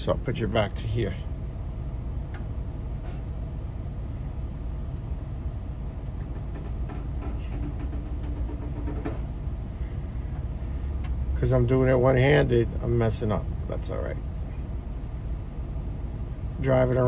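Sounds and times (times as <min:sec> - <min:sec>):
faint steady hum: 0:00.0 - 0:17.0
minivan engine idling: 0:00.0 - 0:17.0.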